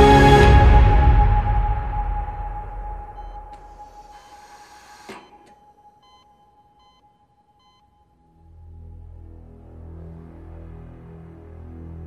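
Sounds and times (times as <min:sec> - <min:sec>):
steady high ringing tone: 0:01.0 - 0:09.2
heart monitor beeping: 0:02.2 - 0:08.8.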